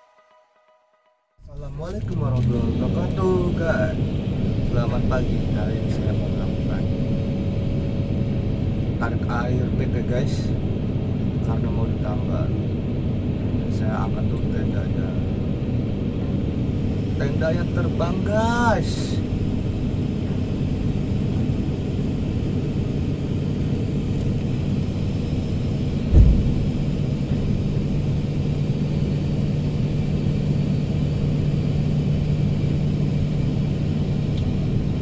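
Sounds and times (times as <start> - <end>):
diesel engine rumbling: 1.4 - 35.0.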